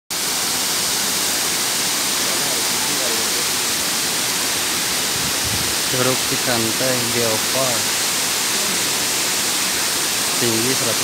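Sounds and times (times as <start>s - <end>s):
waterfall rushing onto rocks: 0.1s - 11.0s.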